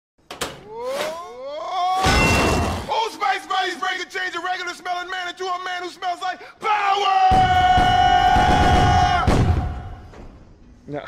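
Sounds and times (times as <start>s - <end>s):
man yelling: 0.8s - 9.3s.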